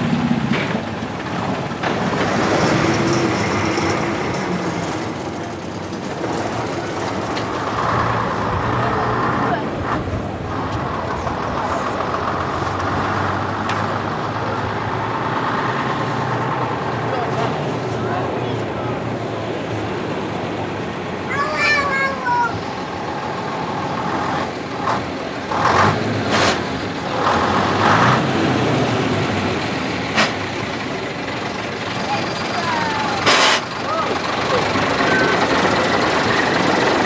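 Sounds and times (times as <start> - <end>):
lorry diesel engine passing: 0.0 - 37.0
people talking: 7.8 - 15.0, 15.6 - 23.1, 30.2 - 37.0.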